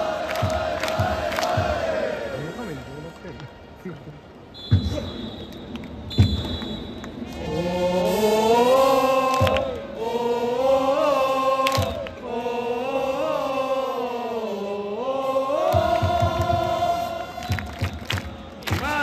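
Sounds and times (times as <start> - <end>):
fans singing in unison: 0.0 - 2.6, 7.2 - 19.0.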